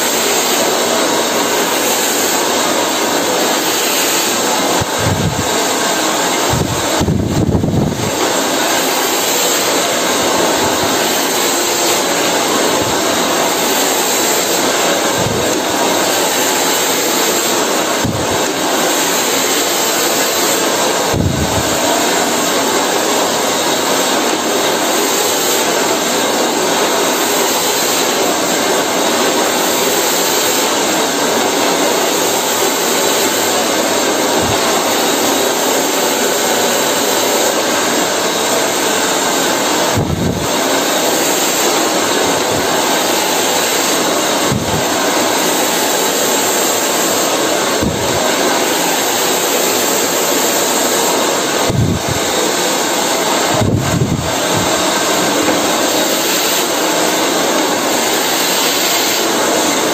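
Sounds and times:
brush through hair: 0:00.0 - 0:59.9
hair dryer blowing: 0:00.0 - 0:59.9.

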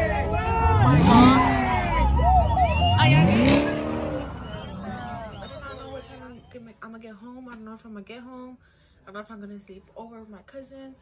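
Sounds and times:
car engine revving: 0:00.0 - 0:06.5.

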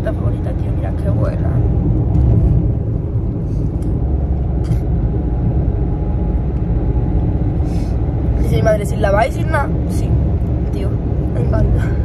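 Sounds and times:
car engine and road noise: 0:00.0 - 0:12.0.

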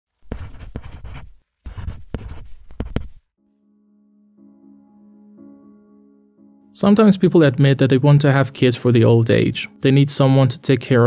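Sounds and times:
pen scratching on paper: 0:00.2 - 0:03.3
sustained music chord: 0:03.4 - 0:11.0.

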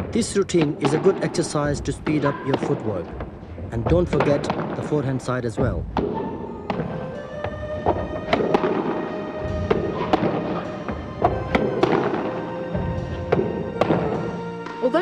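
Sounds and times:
racket hitting squash ball: 0:00.0 - 0:04.8, 0:05.6 - 0:14.8
background music: 0:00.0 - 0:15.0
ball hitting wall: 0:05.6 - 0:14.8.

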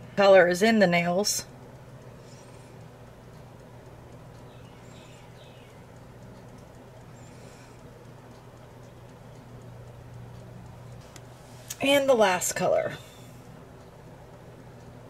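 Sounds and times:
steady low hum: 0:00.0 - 0:15.0
light scratches and clicks: 0:01.7 - 0:11.9.

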